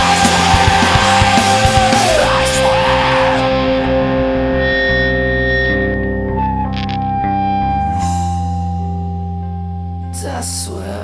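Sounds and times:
distorted electric guitar chords: 0:00.0 - 0:11.0
cymbal wash: 0:04.6 - 0:09.9.

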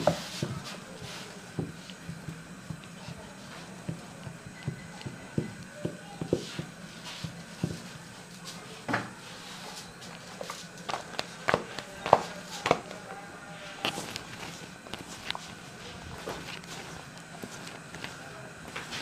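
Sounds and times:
rolling pin on dough: 0:00.0 - 0:19.0
dough slapped and patted on pot: 0:10.8 - 0:12.9.

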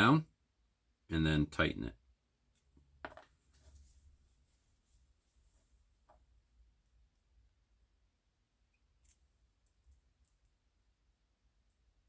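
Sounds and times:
soft rubbing: 0:03.4 - 0:06.2.

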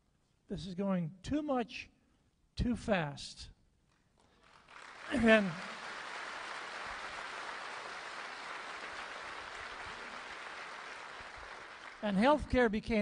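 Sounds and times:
audience applauding: 0:04.2 - 0:12.2.

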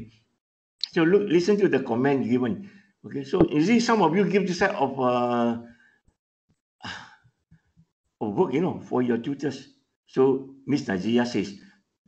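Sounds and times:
man sighing breath: 0:06.8 - 0:07.3.

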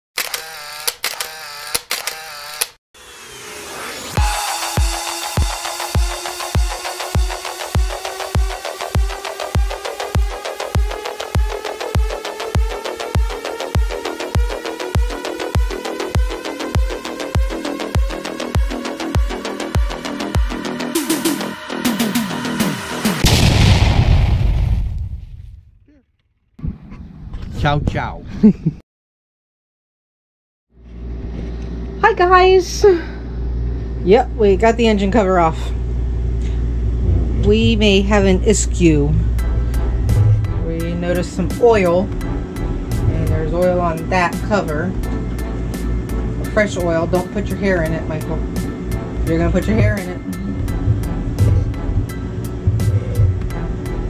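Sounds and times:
mechanical click and whirr: 0:00.2 - 0:02.8
rising whoosh: 0:03.0 - 0:05.9, 0:39.2 - 0:40.9
electronic music with beat: 0:04.2 - 0:23.2, 0:48.4 - 0:54.0
deep boom: 0:23.2 - 0:25.8, 0:36.7 - 0:38.5, 0:39.2 - 0:41.0, 0:49.3 - 0:53.6.

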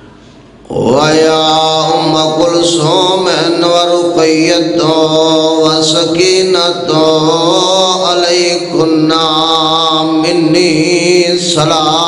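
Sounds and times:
man chanting through microphone: 0:00.6 - 0:12.0.

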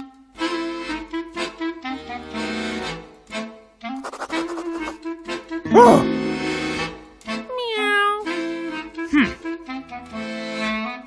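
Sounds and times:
light background music: 0:00.0 - 0:11.0
cartoon cat meow: 0:07.5 - 0:08.3.

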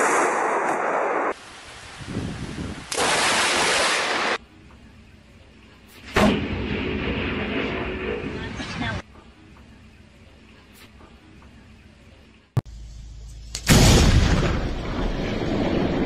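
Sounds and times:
wind and rain noise: 0:00.0 - 0:12.6
loud thunder boom: 0:06.2 - 0:09.0, 0:13.7 - 0:16.0
low thunder rumbling: 0:06.2 - 0:09.0, 0:13.7 - 0:16.0.

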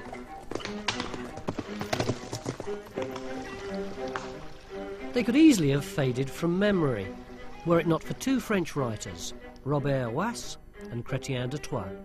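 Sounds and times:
horse hooves clopping: 0:00.0 - 0:05.7
background music with sustained notes: 0:00.0 - 0:12.0.

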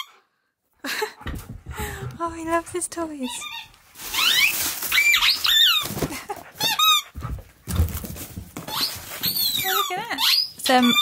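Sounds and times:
low thuds: 0:01.2 - 0:02.9
squeaky dog toy squeaking: 0:03.2 - 0:06.0, 0:06.6 - 0:07.2, 0:08.7 - 0:11.0.

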